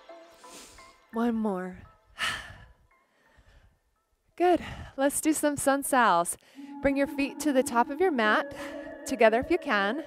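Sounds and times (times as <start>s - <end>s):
quiet breathing: 2.2s - 4.0s.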